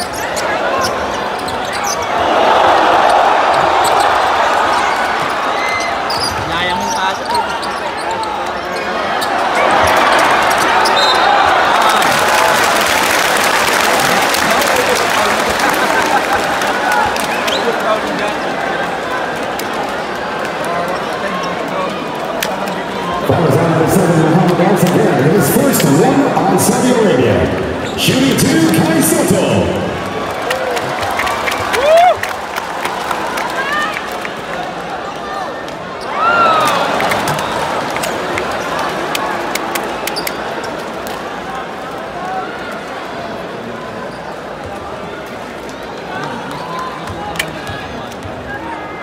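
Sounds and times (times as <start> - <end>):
arena crowd voices: 0.0 - 49.0.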